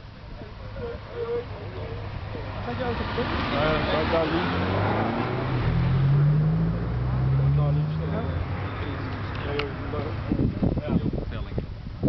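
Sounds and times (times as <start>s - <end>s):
indistinct chatter of people: 0.0s - 12.0s
car engine accelerating: 0.9s - 10.8s.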